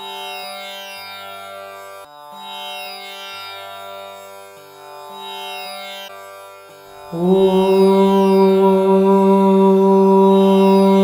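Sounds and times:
man chanting: 7.1 - 11.0.

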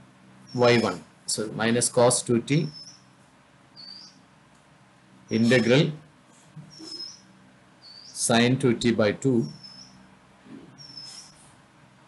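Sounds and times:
faint high-pitched chirp: 2.6 - 3.1, 3.8 - 4.2, 6.6 - 8.2, 9.4 - 10.1, 10.7 - 11.4.

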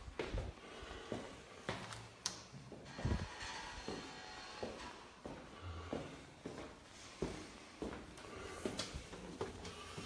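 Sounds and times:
soft footsteps in corridor: 0.0 - 10.0.

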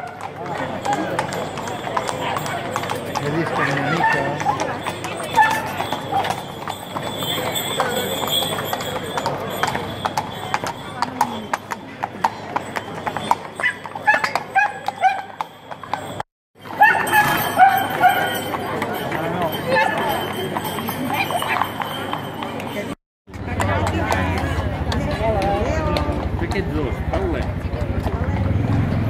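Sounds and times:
people talking: 0.0 - 13.4, 16.8 - 29.0
hooves clip-clopping on stone: 0.0 - 28.6.

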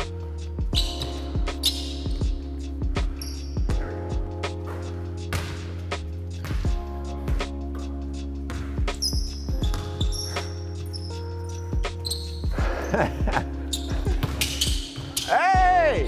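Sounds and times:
background music: 0.0 - 16.0
basketball bouncing on hardwood floor: 5.3 - 5.6, 6.4 - 6.8, 8.5 - 10.3, 13.8 - 15.3.

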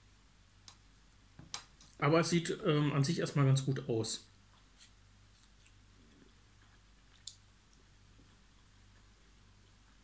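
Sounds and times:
low steady hum: 0.0 - 10.0
person chewing: 4.5 - 10.0.

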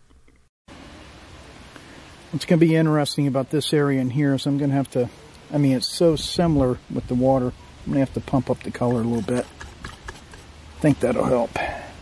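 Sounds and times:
outdoor background hiss: 0.0 - 12.0.

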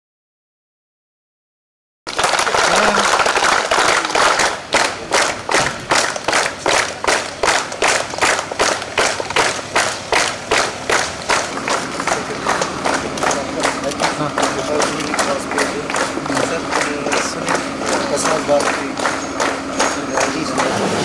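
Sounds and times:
crowd clapping: 2.1 - 21.0.

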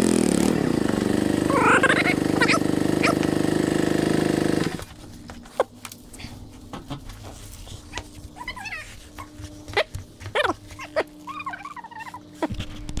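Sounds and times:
dog whining: 1.5 - 3.3, 7.8 - 12.5.

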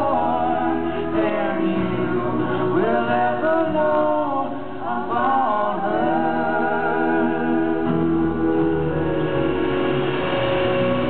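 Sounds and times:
man singing country song: 0.0 - 7.9
women singing harmony: 0.0 - 11.0.

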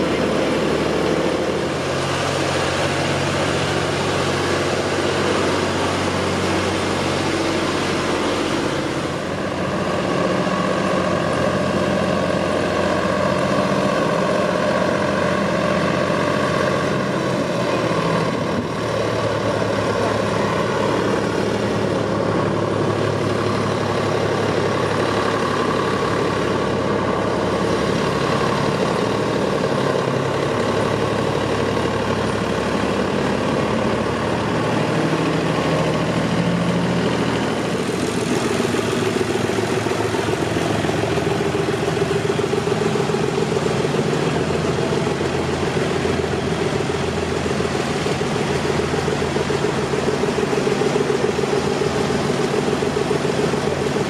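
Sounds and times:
tractor diesel engines running: 0.0 - 54.0.

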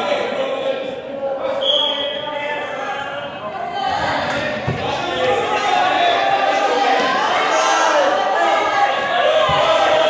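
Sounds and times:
voices in a gym: 0.0 - 10.0
referee's whistle blast: 1.6 - 2.3.

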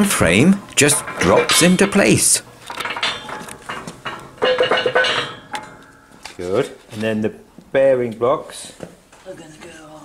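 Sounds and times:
steel parts clinking and clanking: 0.0 - 6.6.

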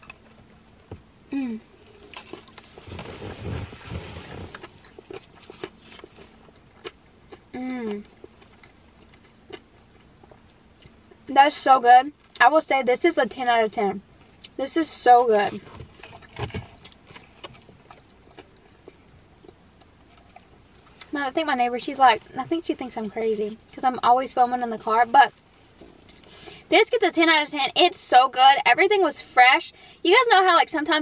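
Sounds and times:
person chewing food: 1.8 - 11.2, 15.7 - 21.1.

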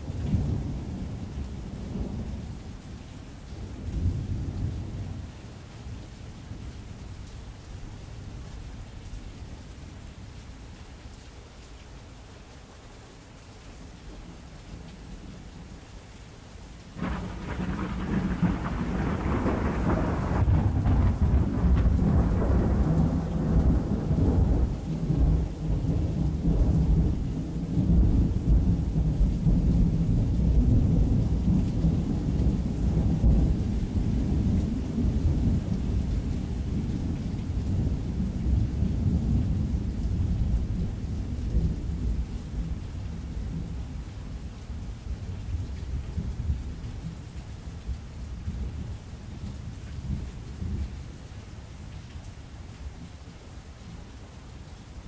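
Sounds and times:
rain falling: 0.0 - 55.0
thunderclap rumbling: 17.0 - 35.7.

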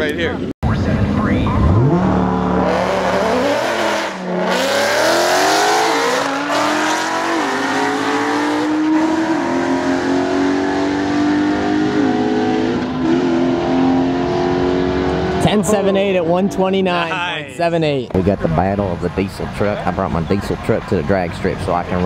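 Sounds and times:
cars accelerating at full throttle: 0.6 - 16.9.

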